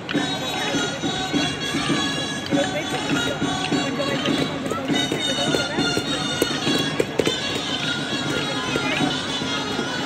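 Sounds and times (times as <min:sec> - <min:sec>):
crowd murmuring: 0:00.0 - 0:10.0
wind instruments playing folk tune: 0:00.0 - 0:10.0.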